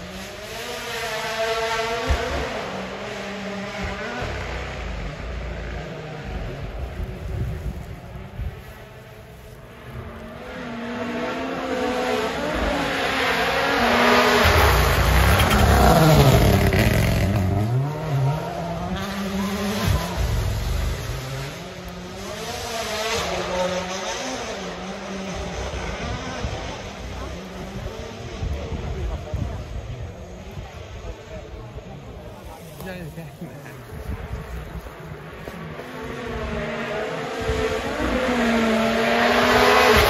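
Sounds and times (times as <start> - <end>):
rally car engine revving past: 9.9 - 29.7, 35.3 - 40.0.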